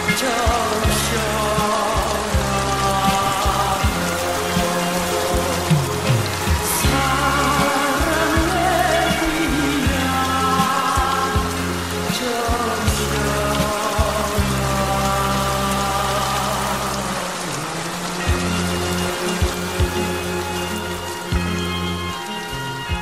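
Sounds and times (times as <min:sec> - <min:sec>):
folk-pop instrumental music: 0:00.0 - 0:23.0
rain falling: 0:00.0 - 0:23.0.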